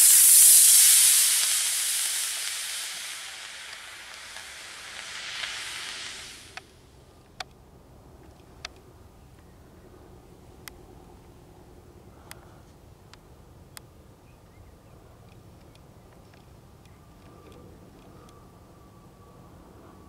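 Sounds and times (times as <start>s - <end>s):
rocket motor hissing: 0.0s - 6.7s
faint clicks: 1.1s - 6.7s, 15.2s - 18.4s.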